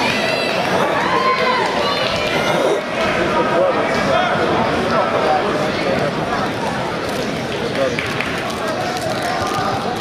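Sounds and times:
crowd shouting and talking: 0.0 - 10.0.

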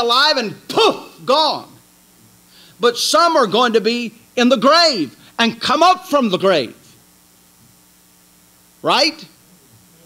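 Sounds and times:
man speaking: 0.0 - 1.8, 2.8 - 6.8, 8.8 - 9.4
faint mains hum: 0.0 - 10.0.

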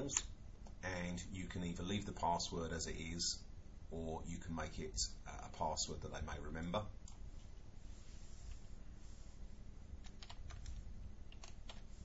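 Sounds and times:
computer keyboard typing: 10.0 - 11.8.

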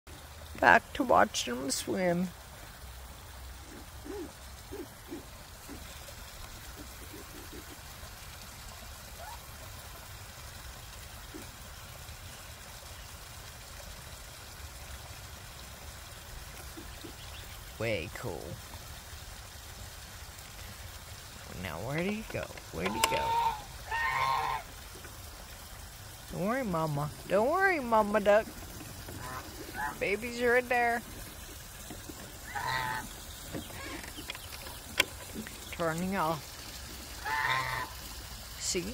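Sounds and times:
water trickling over spillway: 0.1 - 38.9
low goose calls: 3.6 - 6.0, 22.7 - 24.7, 29.0 - 30.2, 32.4 - 34.3, 37.2 - 38.1.

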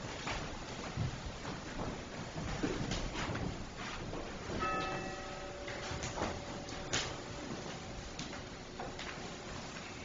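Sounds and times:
bell struck ringing: 4.5 - 8.6.

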